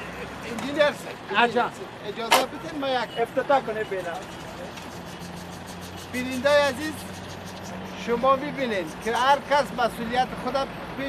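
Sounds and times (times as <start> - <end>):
faint street noise: 0.0 - 11.0
vehicle engine idling: 0.0 - 11.0.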